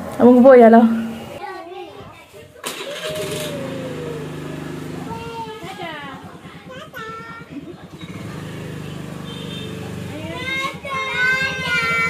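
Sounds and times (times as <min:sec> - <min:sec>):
scooter engine throttling up: 0:02.6 - 0:12.0.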